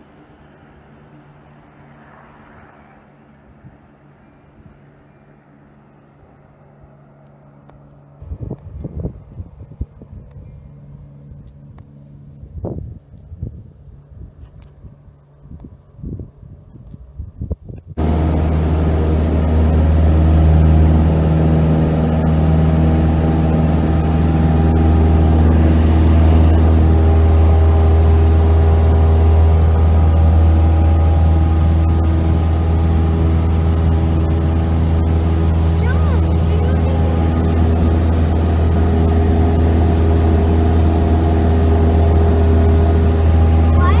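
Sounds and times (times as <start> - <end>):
airplane engine and propeller drone: 0.0 - 44.0.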